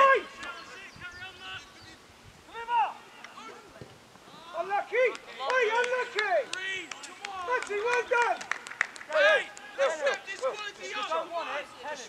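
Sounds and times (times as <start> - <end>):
distant players shouting: 0.0 - 11.4.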